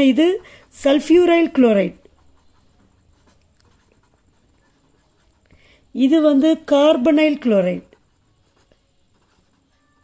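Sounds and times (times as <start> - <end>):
pen scratching on paper: 0.0 - 10.0.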